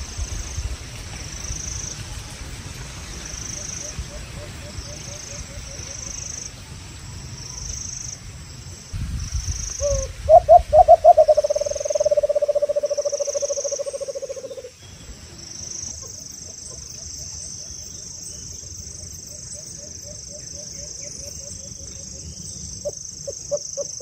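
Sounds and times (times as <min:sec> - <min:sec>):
insects buzzing in pulses: 0:02.8 - 0:16.4
dove cooing: 0:09.8 - 0:14.7.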